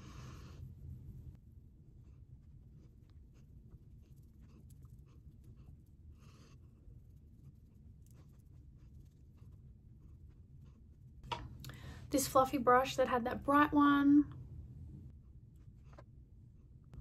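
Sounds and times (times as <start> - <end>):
low room hum: 0.0 - 17.0
makeup brush brushing skin: 1.6 - 11.2.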